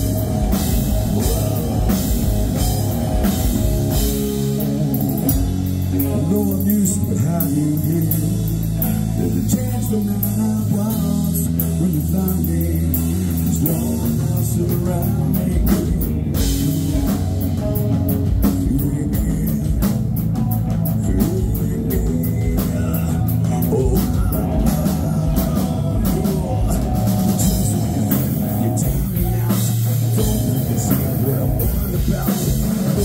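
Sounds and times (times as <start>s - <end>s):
bass guitar: 0.0s - 33.0s
distorted electric guitar: 0.0s - 33.0s
drum kit: 0.0s - 33.0s
man singing lead vocals: 0.0s - 33.0s.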